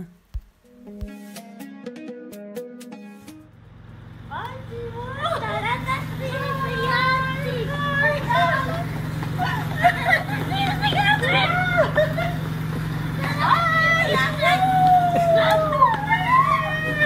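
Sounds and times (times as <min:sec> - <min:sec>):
low hum: 0:03.5 - 0:17.0
child calling out: 0:04.3 - 0:09.7, 0:13.2 - 0:17.0
woman calling out: 0:04.3 - 0:09.9, 0:13.2 - 0:17.0.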